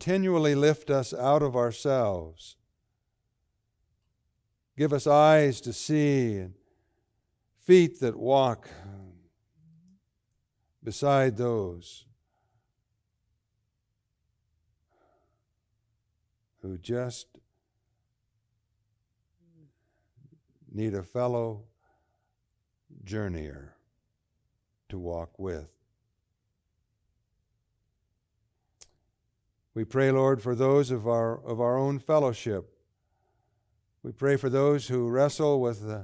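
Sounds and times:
man praying: 0.0 - 2.6, 4.8 - 6.6, 7.6 - 9.5, 10.8 - 12.2, 16.6 - 17.4, 20.6 - 21.8, 22.9 - 23.9, 24.8 - 25.8, 29.7 - 32.7, 34.0 - 36.0.

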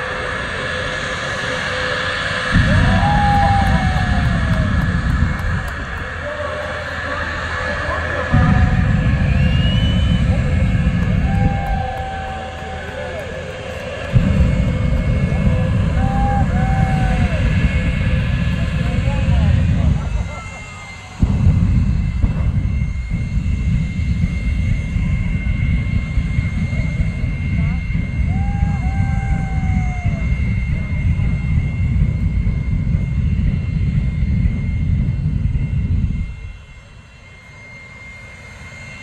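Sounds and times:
crowd voices: 0.0 - 23.1, 24.3 - 32.5
jet afterburner rumble: 0.0 - 38.9.

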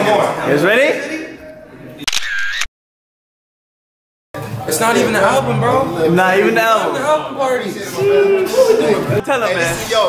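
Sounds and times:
camera shutter clicks: 2.0 - 2.7.

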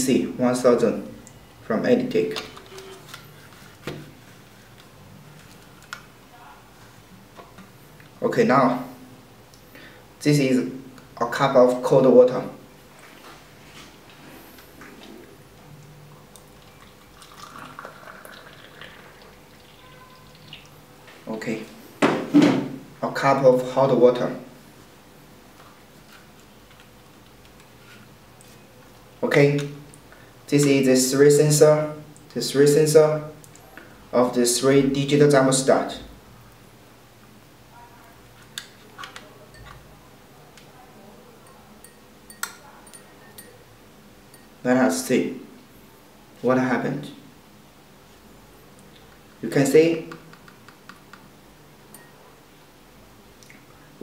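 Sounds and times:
water pouring into a glass: 16.5 - 20.8
glass clinks: 41.5 - 43.7, 51.9 - 52.2.

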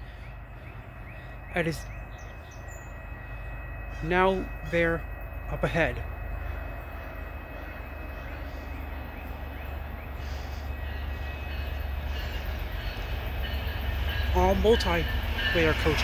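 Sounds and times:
diesel train rumble: 0.0 - 16.0.

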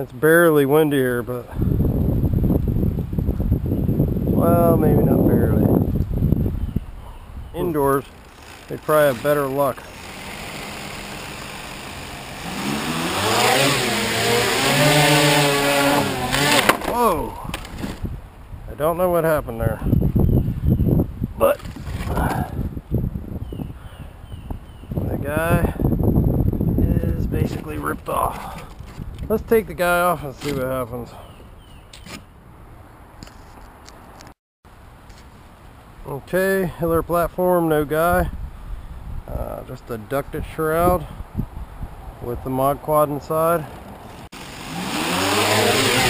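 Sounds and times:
wind rumble on microphone: 1.4 - 8.1, 17.2 - 30.7, 36.9 - 42.9
drone motors and propellers: 7.9 - 18.1.

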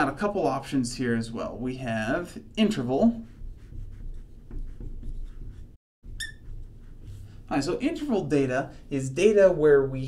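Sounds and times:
marker scratching on glass: 2.7 - 7.7
marker squeak: 3.6 - 7.2.

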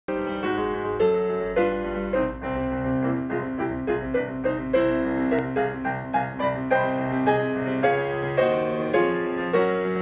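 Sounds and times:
slow piano chords: 0.1 - 10.0.

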